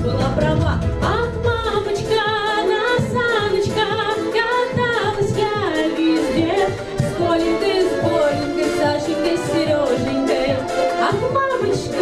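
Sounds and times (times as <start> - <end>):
backing track with steady beat: 0.0 - 12.0
girl singing with vibrato: 1.1 - 12.0.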